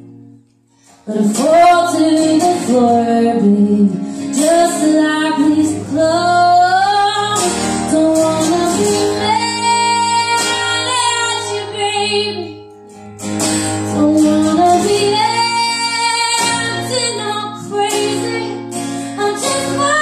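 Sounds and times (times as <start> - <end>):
acoustic guitar: 0.0 - 20.0
woman singing: 1.0 - 12.6, 13.9 - 20.0.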